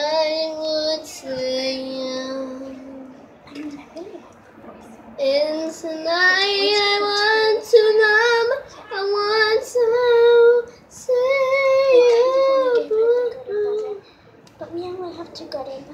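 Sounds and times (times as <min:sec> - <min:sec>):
girl singing: 0:00.0 - 0:03.7, 0:05.2 - 0:14.0.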